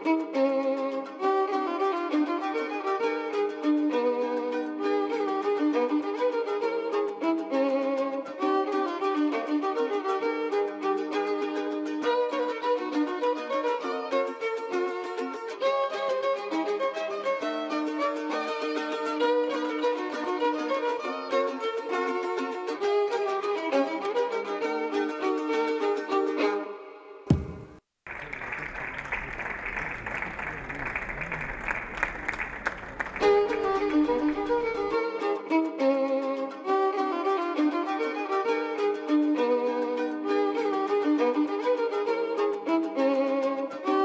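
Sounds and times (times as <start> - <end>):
violin music: 0.0 - 27.7, 32.0 - 44.0
audience applause: 27.3 - 34.9.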